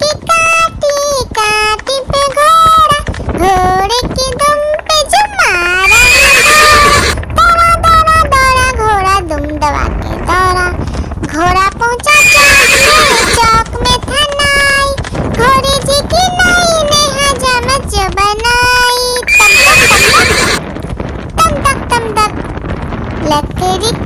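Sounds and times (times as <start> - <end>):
horse whinnying: 5.8 - 7.2, 12.1 - 13.4, 19.3 - 20.6.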